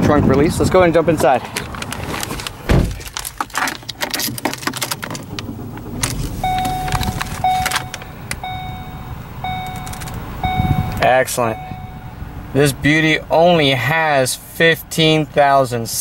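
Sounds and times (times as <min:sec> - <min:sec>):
car warning chime: 0:06.4 - 0:12.4.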